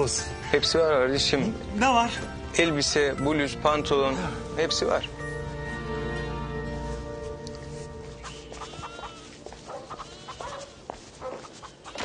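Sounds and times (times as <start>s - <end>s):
village ambience: 0.0s - 12.0s
livestock bleating: 8.2s - 10.6s.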